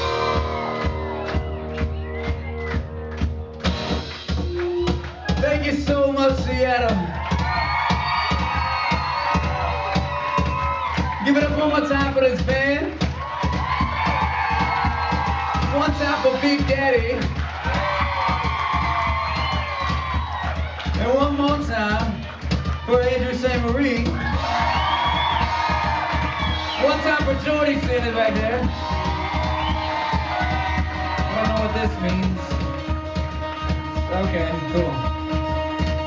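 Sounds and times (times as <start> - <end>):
audience cheering and whooping: 0.0 - 36.0
live band playing: 0.0 - 36.0
kick drum beat: 6.9 - 36.0.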